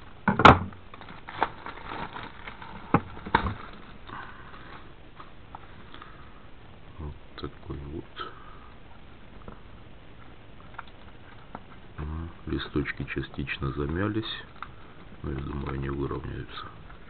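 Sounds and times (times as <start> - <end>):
plastic bag crinkling: 0.9 - 4.9.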